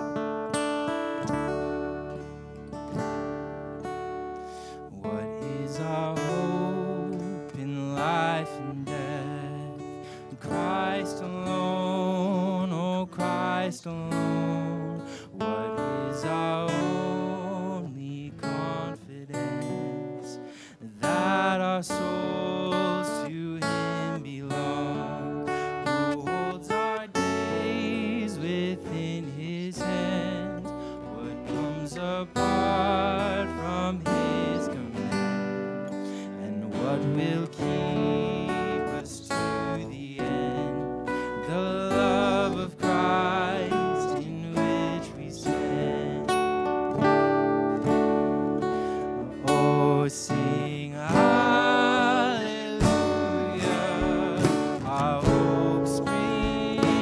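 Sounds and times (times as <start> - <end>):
strummed acoustic guitar: 0.0 - 57.0
voices singing a hymn: 49.4 - 57.0.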